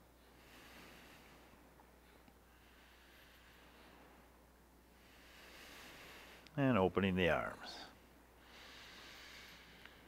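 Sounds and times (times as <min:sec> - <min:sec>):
soft breath: 0:00.0 - 0:06.5, 0:07.6 - 0:10.0.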